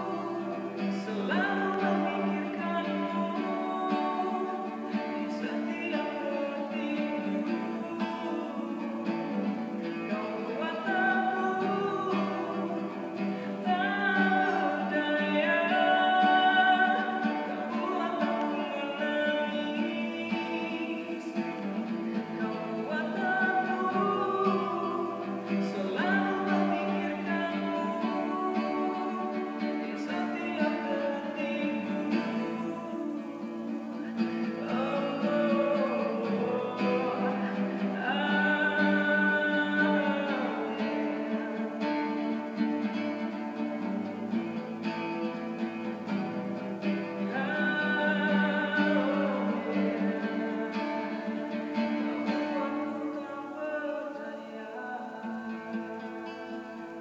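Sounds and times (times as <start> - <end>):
man singing: 0.0 - 57.0
strummed classical guitar: 0.0 - 57.0.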